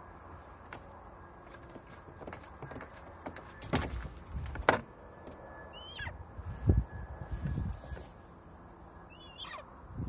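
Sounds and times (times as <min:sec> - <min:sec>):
eagle yelping call: 0:05.7 - 0:06.2, 0:09.1 - 0:09.7.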